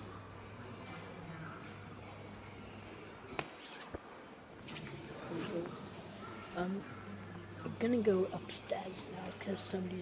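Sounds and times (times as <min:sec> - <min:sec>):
faint background noise: 0:00.0 - 0:10.0.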